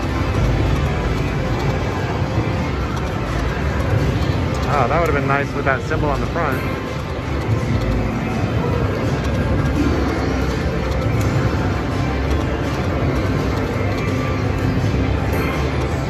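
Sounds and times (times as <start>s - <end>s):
casino background noise: 0.0s - 16.0s
slot machine music and effects: 0.0s - 16.0s.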